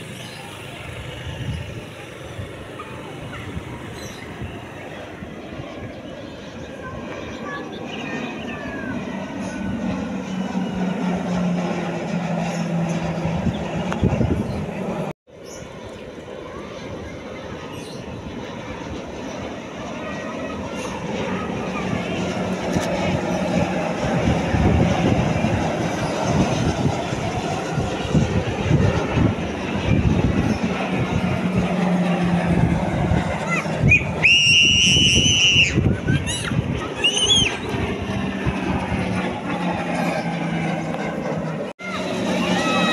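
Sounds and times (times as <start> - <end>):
propeller aircraft droning overhead: 0.0 - 42.9.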